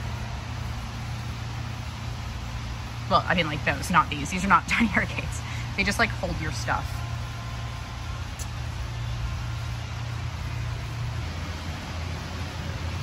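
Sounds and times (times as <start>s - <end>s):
store background rumble and hiss: 0.0s - 13.0s.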